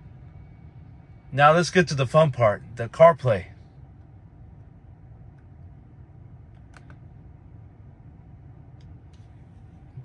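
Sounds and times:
car cabin hum: 0:00.0 - 0:10.0.

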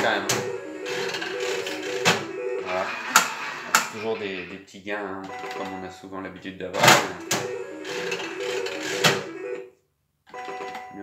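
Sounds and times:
slot machine electronic tune: 0:00.0 - 0:04.0, 0:05.3 - 0:05.9, 0:07.0 - 0:09.7
slot machine reels clunk: 0:00.0 - 0:04.4, 0:06.8 - 0:09.6.

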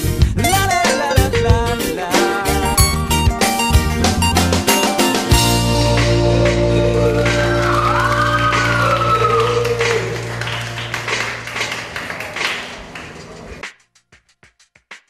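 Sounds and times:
band song held chord: 0:00.4 - 0:11.6.

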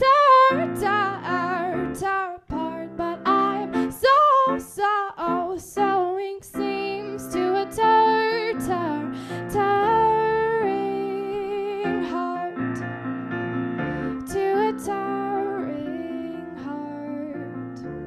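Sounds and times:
woman singing: 0:00.0 - 0:12.9, 0:14.1 - 0:18.0
piano accompaniment: 0:00.0 - 0:18.0.

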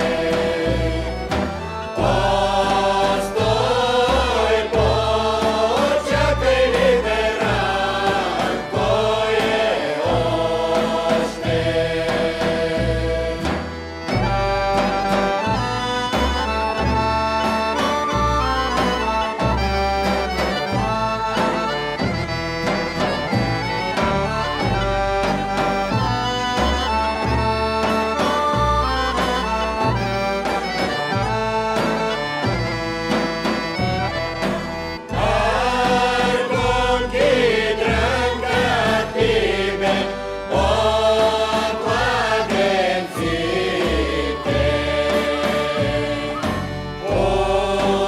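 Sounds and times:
bass drum beat: 0:00.0 - 0:30.2
accordion: 0:00.0 - 0:48.0
person singing: 0:35.1 - 0:48.0.

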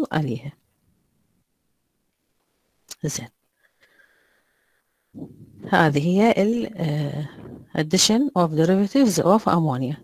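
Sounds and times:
person speaking: 0:05.2 - 0:10.0.

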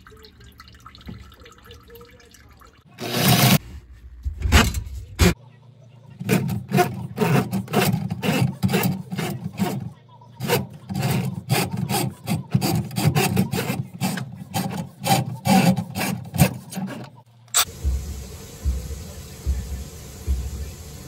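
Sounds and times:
drain cable rasping in pipe: 0:06.2 - 0:17.2.

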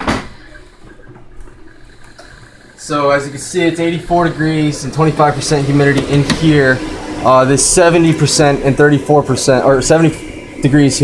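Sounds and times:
exhaust fan whirring: 0:00.0 - 0:11.0.

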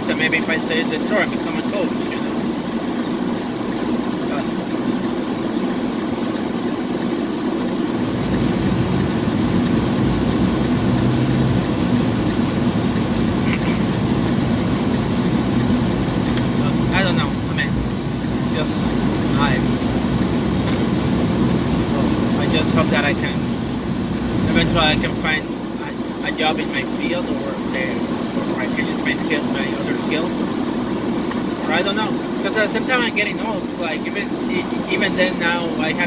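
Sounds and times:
car engine and road hum: 0:00.0 - 0:36.0
low rumble: 0:00.8 - 0:32.4.

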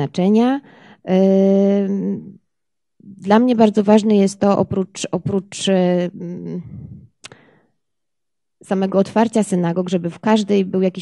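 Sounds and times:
woman speaking into microphone: 0:00.0 - 0:02.4, 0:03.0 - 0:07.1, 0:08.6 - 0:11.0.

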